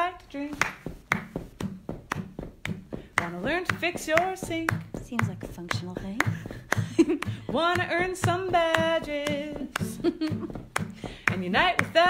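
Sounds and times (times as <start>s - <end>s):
sharp percussive taps: 0.5s - 12.0s.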